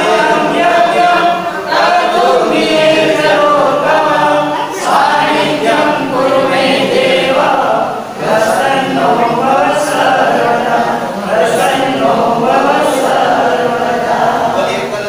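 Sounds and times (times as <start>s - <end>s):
group singing unaccompanied: 0.0s - 15.0s.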